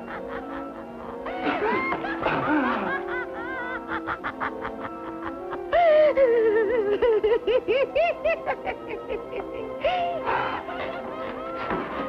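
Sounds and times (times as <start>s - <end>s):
horror film score: 0.0s - 12.0s.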